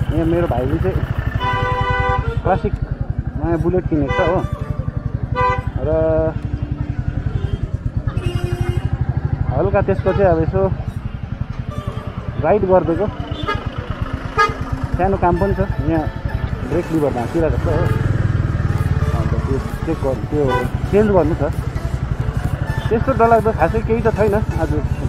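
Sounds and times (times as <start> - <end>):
motorcycle engine at low speed: 0.0 - 25.0.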